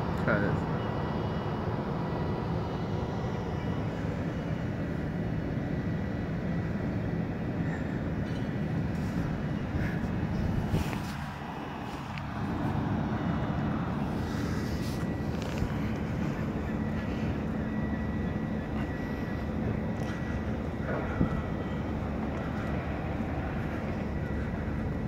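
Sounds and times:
ship engine low rumble: 0.0s - 25.0s.

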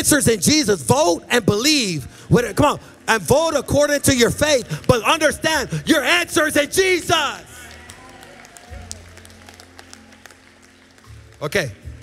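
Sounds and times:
person preaching: 0.0s - 7.7s
soft low band music: 0.0s - 12.0s
congregation clapping: 2.4s - 12.0s.

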